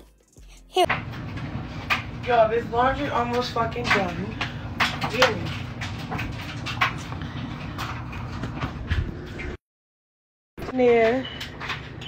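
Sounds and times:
laundry machine humming: 0:00.8 - 0:09.6.

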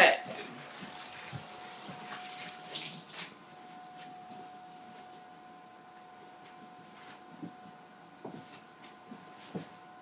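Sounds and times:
faint steady hum: 0:00.0 - 0:10.0
water splashing and dripping: 0:00.6 - 0:03.3.

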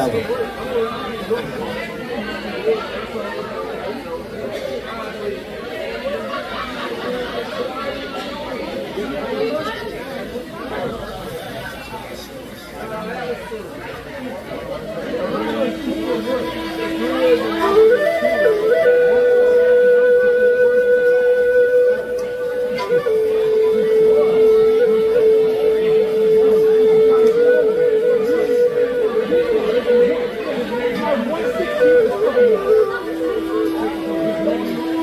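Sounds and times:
background talk: 0:00.0 - 0:35.0
flute slow melody: 0:15.1 - 0:35.0.

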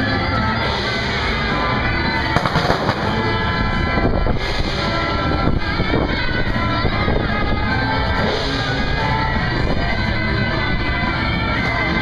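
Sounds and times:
loud procession music: 0:00.0 - 0:12.0
firecrackers crackling: 0:02.2 - 0:03.6.

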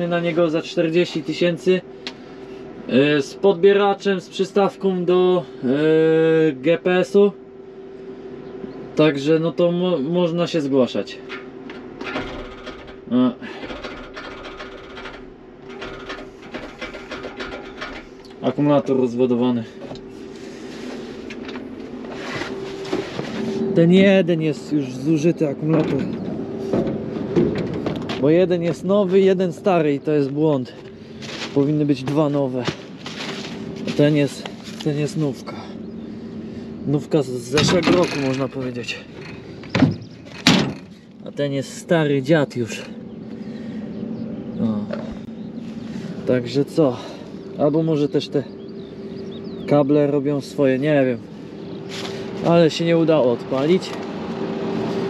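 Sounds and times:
sharp metal knocks: 0:11.3 - 0:18.3, 0:37.5 - 0:41.0
starter motor cranking: 0:11.3 - 0:18.6, 0:33.0 - 0:41.3.

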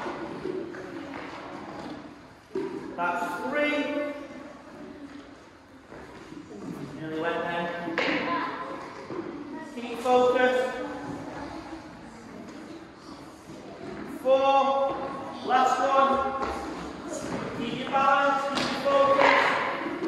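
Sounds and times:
person speaking in echoing hall: 0:02.5 - 0:05.2, 0:06.4 - 0:20.0.

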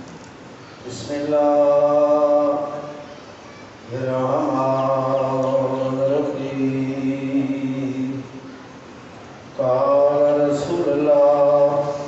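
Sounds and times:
man chanting into a microphone: 0:00.8 - 0:03.0, 0:03.9 - 0:08.5, 0:09.6 - 0:12.0.

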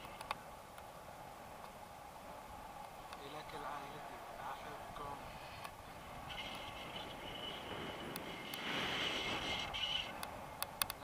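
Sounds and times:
wind rushing over microphone: 0:00.0 - 0:11.0
high steady whistling tone: 0:03.8 - 0:11.0
sharp clicks: 0:10.0 - 0:11.0.

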